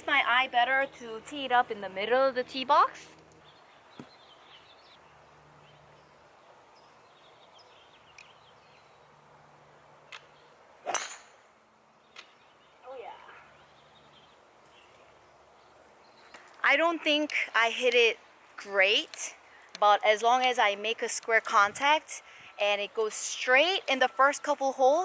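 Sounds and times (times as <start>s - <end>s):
golf club striking ball: 10.1s - 11.5s.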